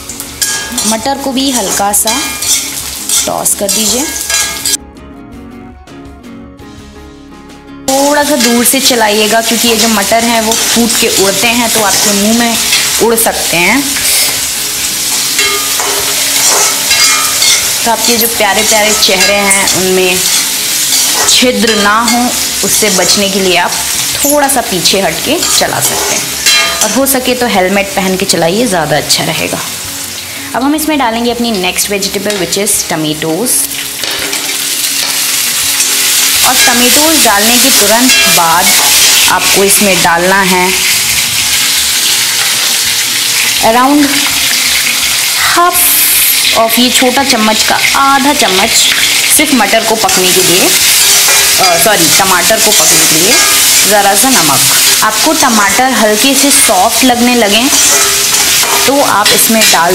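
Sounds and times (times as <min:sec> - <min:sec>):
vegetables sizzling in hot oil: 0:00.0 - 0:04.8, 0:07.9 - 0:59.9
metal spatula stirring: 0:00.4 - 0:04.8, 0:09.7 - 0:13.3, 0:15.0 - 0:23.2, 0:25.4 - 0:27.1, 0:34.0 - 0:39.5, 0:50.8 - 0:55.1, 0:56.4 - 0:59.9.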